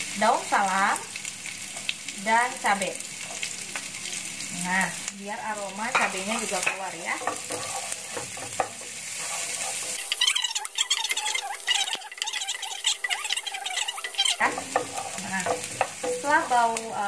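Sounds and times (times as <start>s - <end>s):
vegetables sizzling in hot oil: 0.0s - 17.0s
wooden spatula scraping wok: 5.9s - 16.7s.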